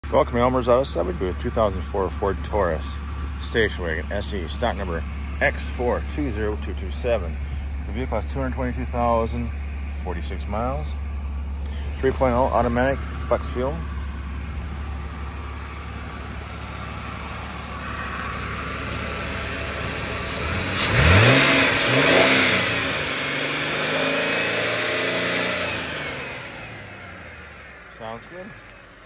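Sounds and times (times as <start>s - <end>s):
car engine idling and revving: 0.0s - 29.0s.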